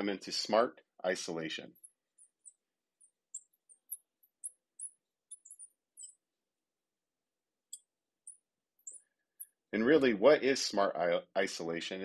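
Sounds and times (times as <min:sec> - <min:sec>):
marker squeaking on glass: 0:01.7 - 0:06.3, 0:07.7 - 0:09.6.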